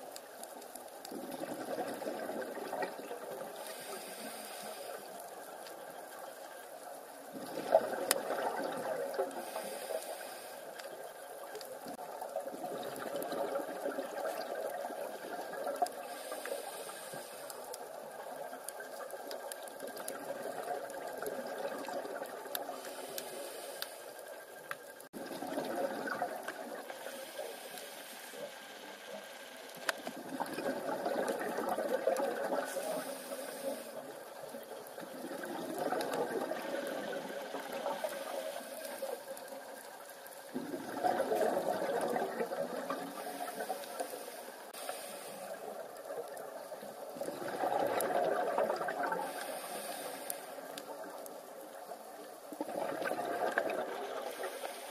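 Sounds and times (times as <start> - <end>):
exhaled bubbles rushing: 1.1 - 3.7, 7.3 - 9.5, 12.2 - 16.1, 19.7 - 22.9, 25.2 - 27.0, 30.1 - 32.9, 34.6 - 38.2, 40.5 - 43.8, 45.7 - 49.4, 52.5 - 54.6
diver breathing through regulator: 3.6 - 5.3, 9.3 - 10.9, 16.0 - 17.8, 22.8 - 24.3, 32.7 - 34.1, 43.1 - 45.8, 49.2 - 50.7, 54.3 - 54.9.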